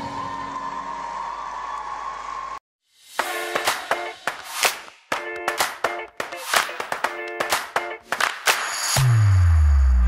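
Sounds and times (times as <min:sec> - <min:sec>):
crowd applauding and cheering: 0:00.0 - 0:02.6, 0:03.2 - 0:09.0.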